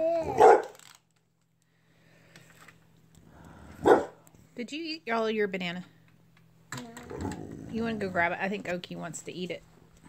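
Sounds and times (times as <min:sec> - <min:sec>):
dog barking: 0:00.3 - 0:00.8, 0:03.8 - 0:04.2.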